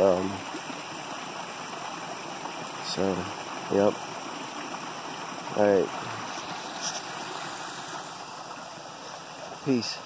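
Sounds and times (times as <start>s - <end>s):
stream and waterfall rushing: 0.0s - 10.0s.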